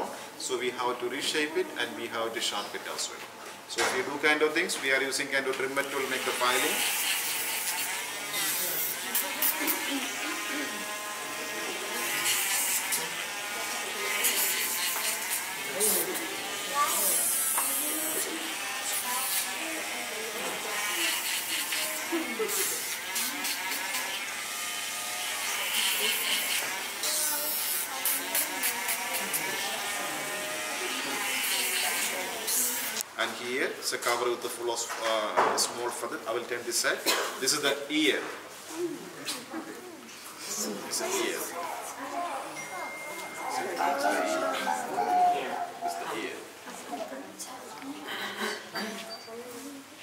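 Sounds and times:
rotary grinding tool running: 6.1 - 33.0
people talking: 38.7 - 48.2.

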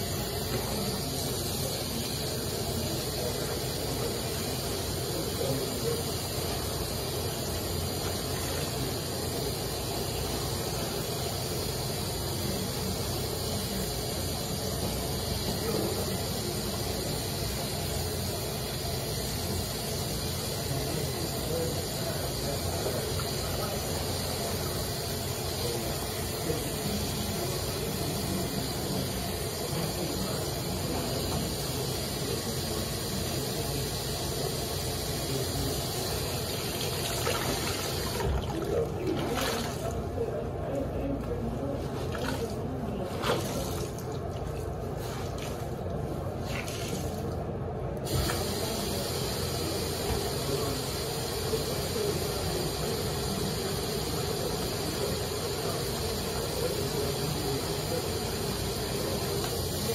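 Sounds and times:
tap water running: 0.0 - 40.0, 43.2 - 45.6, 48.0 - 59.9.

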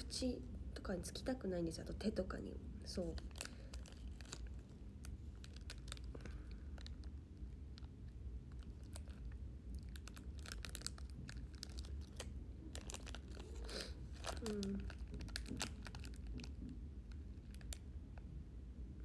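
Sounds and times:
plastic wrapper crackling: 2.9 - 17.9.

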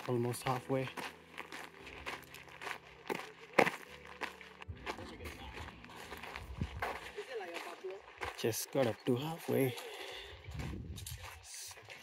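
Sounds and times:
footsteps on dirt: 0.0 - 12.0.

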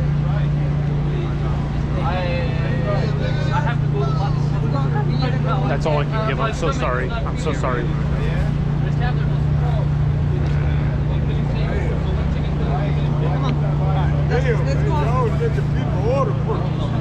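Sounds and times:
faint voices: 0.0 - 17.0
van motor humming: 0.0 - 17.0.

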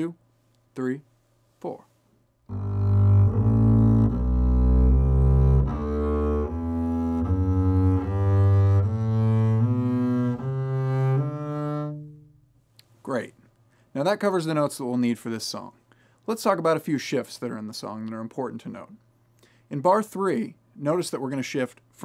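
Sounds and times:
double bass bowed legato: 2.5 - 12.6.

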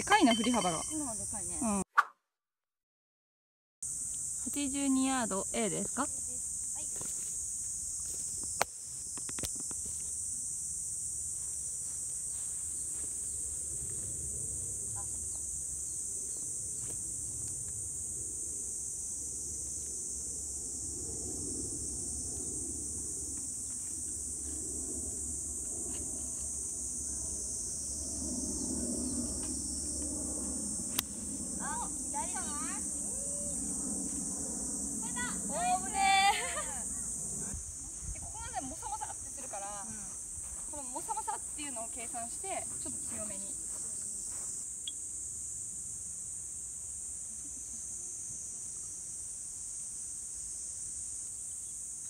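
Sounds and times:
insect chorus drone: 0.0 - 1.8, 3.8 - 52.0.

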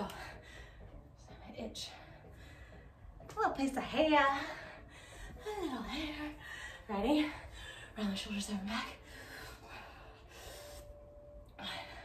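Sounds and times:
woman breathing hard: 0.0 - 3.2, 4.4 - 8.0, 9.0 - 12.0.

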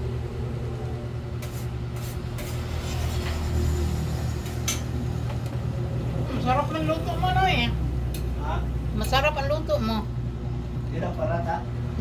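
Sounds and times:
woman speaking: 8.9 - 10.2.

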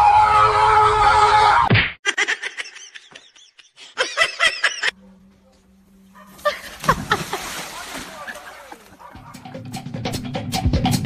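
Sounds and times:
loud splash into water: 6.8 - 8.6.

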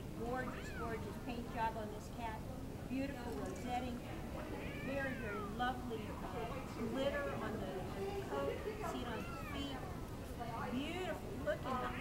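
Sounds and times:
cat meowing: 4.5 - 5.6.

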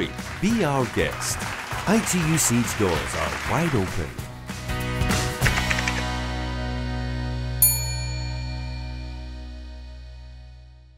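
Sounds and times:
bell-like ding: 7.6 - 9.7.

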